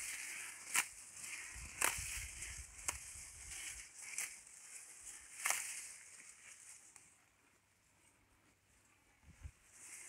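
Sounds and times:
cow tearing grass: 0.0 - 6.8
grass rustling: 0.0 - 10.0.

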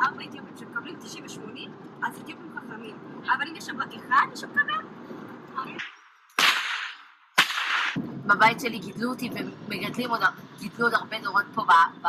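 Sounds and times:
whip cracks: 5.8 - 8.0.

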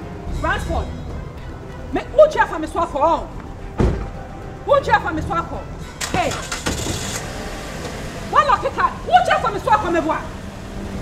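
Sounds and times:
car engine idling: 5.9 - 11.0.

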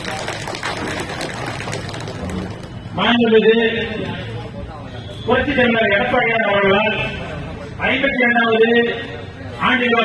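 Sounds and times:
crowd clapping: 0.0 - 2.8.

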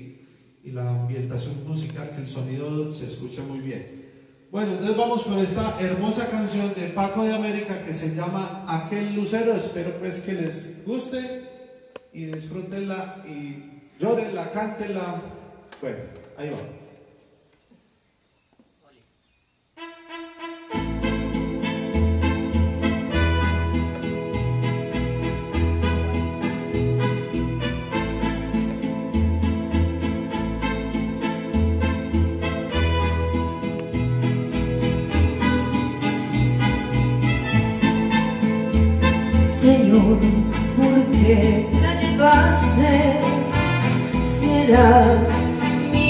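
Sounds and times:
electronic keyboard ballad: 20.8 - 46.0.

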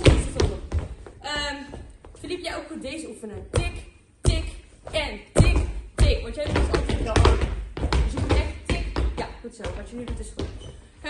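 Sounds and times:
thumps and taps of dancing feet: 0.0 - 2.4, 3.4 - 10.7.

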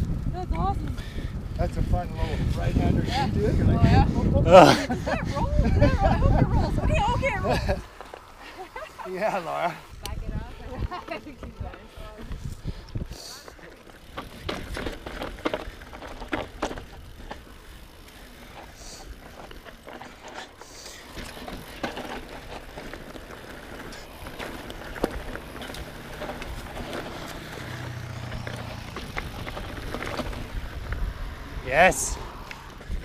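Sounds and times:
bike tyres rolling over dirt: 0.0 - 33.0
bike rattles and knocks: 13.5 - 31.8.

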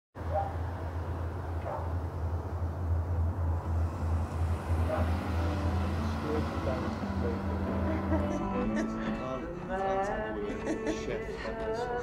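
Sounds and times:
van engine idling: 0.2 - 12.0
steady tone: 0.6 - 10.4.

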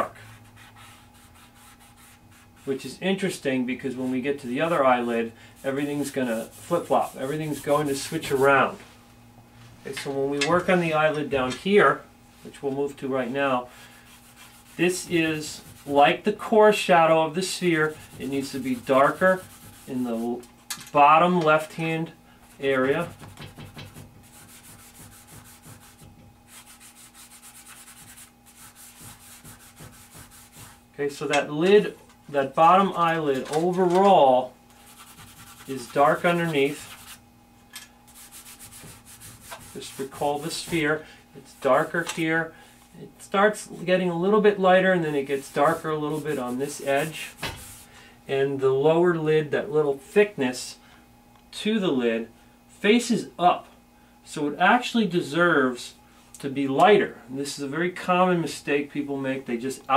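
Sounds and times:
faint steady hum: 0.0 - 59.9
charcoal rubbing on paper: 0.1 - 2.8, 5.6 - 8.5, 13.9 - 16.2, 17.3 - 20.4, 22.4 - 30.8, 34.7 - 37.2, 38.1 - 41.0, 45.3 - 47.9.

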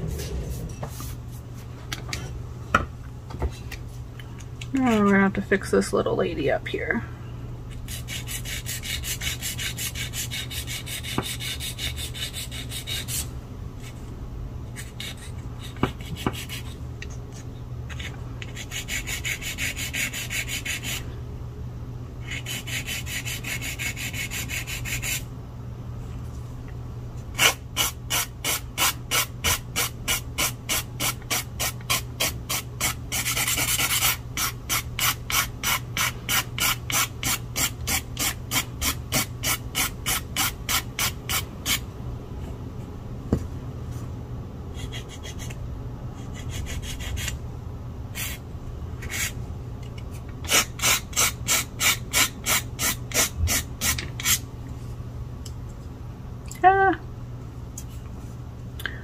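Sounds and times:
nail file rasping on nail: 7.8 - 13.3, 14.8 - 16.8, 17.9 - 21.0, 22.2 - 25.2, 27.4 - 41.8, 44.7 - 45.6, 46.2 - 47.4, 50.5 - 54.4.

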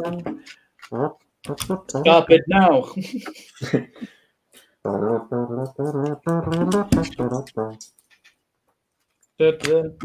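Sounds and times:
man speaking: 1.7 - 3.1, 9.4 - 10.0.

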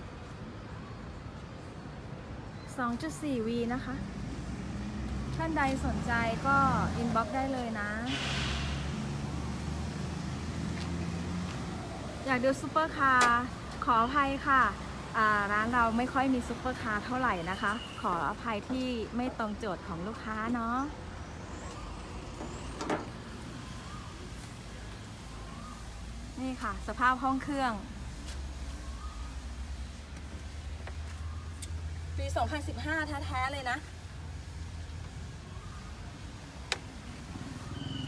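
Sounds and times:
brief hiss: 8.1 - 9.1.

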